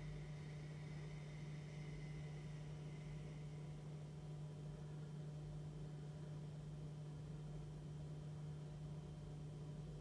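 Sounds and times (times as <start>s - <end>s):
soft breath hiss through throat: 0.0s - 4.0s
steady low hum: 0.0s - 10.0s.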